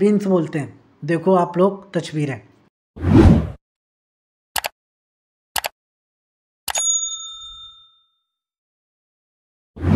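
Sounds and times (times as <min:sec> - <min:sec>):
bright bell ding: 0:06.7 - 0:08.4.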